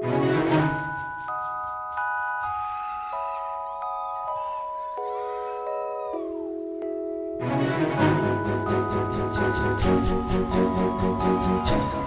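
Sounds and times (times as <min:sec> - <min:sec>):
electronic keyboard chords: 0:00.0 - 0:12.0.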